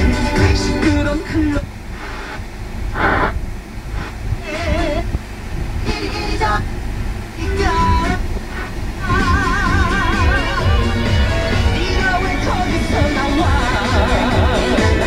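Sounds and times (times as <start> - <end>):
car radio tuning through stations: 0.0 - 15.0.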